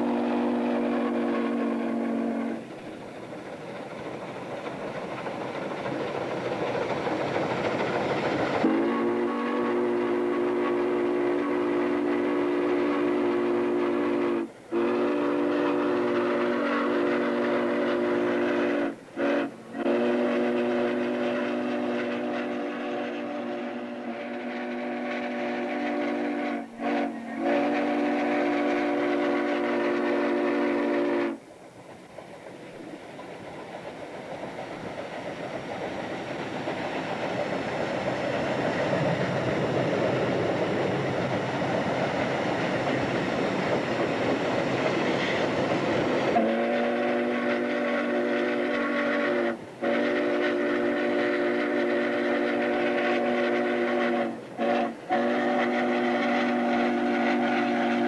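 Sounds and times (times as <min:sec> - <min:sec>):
rushing of running train: 0:00.0 - 0:58.0
chime steam whistle blasts: 0:46.3 - 0:58.0.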